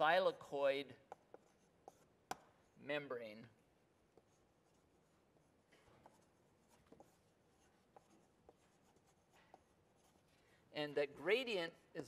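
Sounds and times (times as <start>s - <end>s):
pen scratching while writing: 1.1s - 2.4s, 4.1s - 10.3s.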